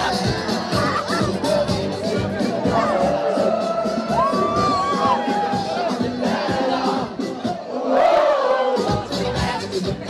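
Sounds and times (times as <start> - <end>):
live concert music with beat: 0.0 - 7.7, 8.7 - 10.0
crowd cheering and shouting: 0.0 - 10.0.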